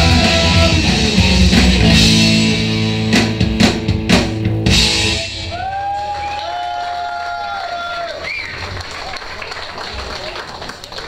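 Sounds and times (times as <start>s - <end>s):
crowd noise: 5.0s - 11.0s
people clapping: 5.6s - 11.0s.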